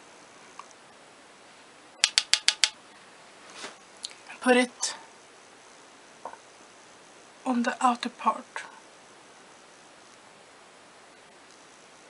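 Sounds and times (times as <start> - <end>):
brush tapping on palette: 2.0 - 2.8.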